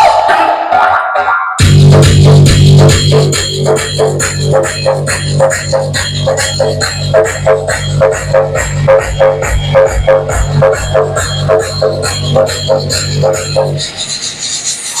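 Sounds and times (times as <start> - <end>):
electronic dance music: 0.0 - 15.0.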